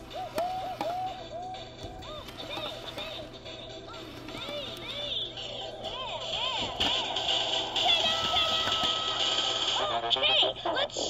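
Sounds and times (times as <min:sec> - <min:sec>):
toy robot electronic tune: 0:00.0 - 0:05.3.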